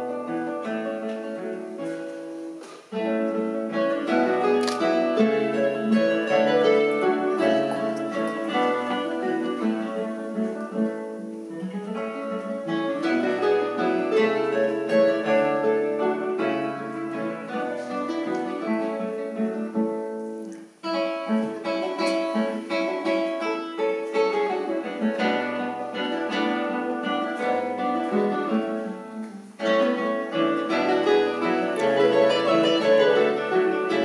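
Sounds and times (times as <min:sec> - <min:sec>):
classical guitars playing: 0:00.0 - 0:34.0.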